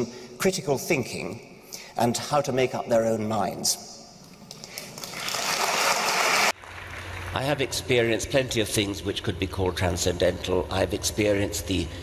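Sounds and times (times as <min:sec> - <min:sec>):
audience applauding: 0:04.5 - 0:07.5.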